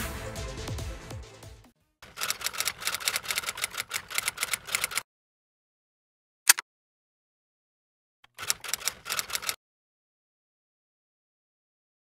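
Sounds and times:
computer keyboard typing: 0:02.0 - 0:05.0, 0:08.3 - 0:09.6.

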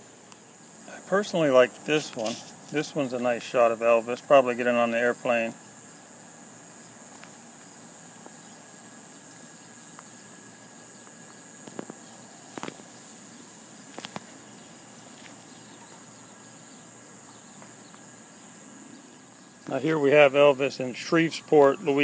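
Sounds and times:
high-pitched hiss: 0:00.0 - 0:22.0.

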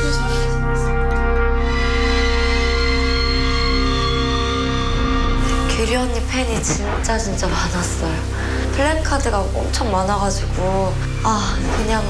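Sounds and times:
music of sustained held notes: 0:00.0 - 0:12.0.

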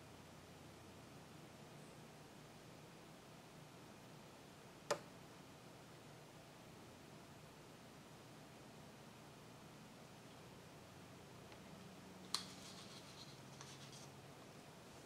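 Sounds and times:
light scraping: 0:12.3 - 0:14.1.

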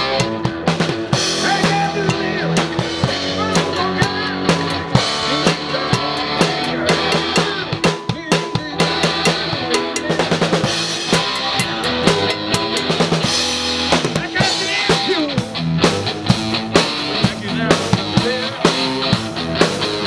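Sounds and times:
drum kit beat: 0:00.0 - 0:20.0
live rock band playing: 0:00.0 - 0:20.0.

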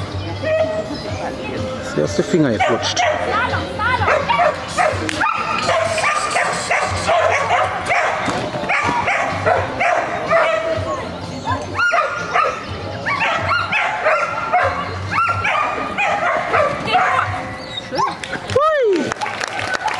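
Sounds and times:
dog barking: 0:02.6 - 0:03.4, 0:04.0 - 0:10.8, 0:11.7 - 0:18.2.

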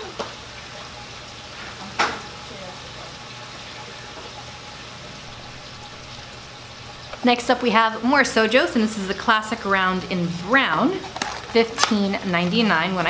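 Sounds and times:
steady hissing noise: 0:00.0 - 0:11.4.

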